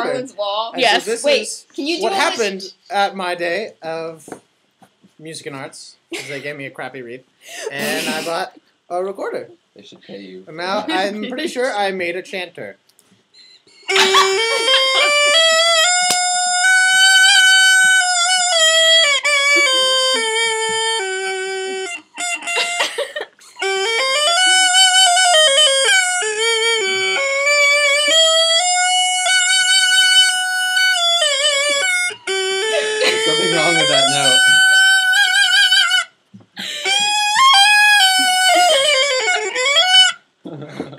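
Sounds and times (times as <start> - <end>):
double-reed chanter melody: 13.4 - 40.2.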